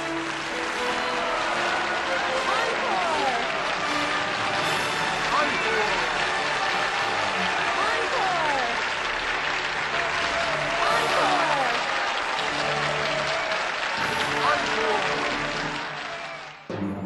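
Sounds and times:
audience applauding: 0.0 - 16.8.

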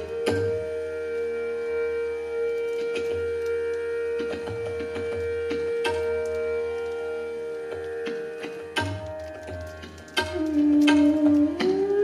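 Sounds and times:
bamboo flute long note: 0.0 - 12.0
tabla stroke: 0.0 - 12.0
tanpura drone: 0.0 - 12.0.

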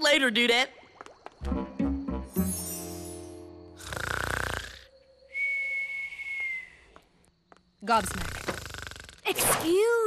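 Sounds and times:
cartoon snore with whistle: 3.8 - 4.9, 8.2 - 9.3.

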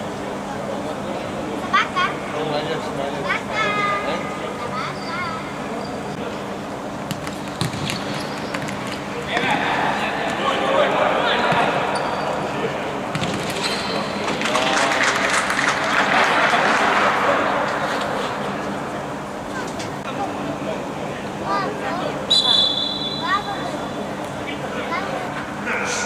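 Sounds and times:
ball kicks and bounces echoing: 7.0 - 9.6, 13.1 - 15.8.

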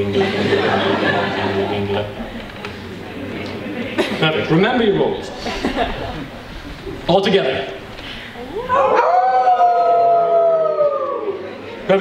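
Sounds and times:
people howling like wolves: 8.5 - 11.5.

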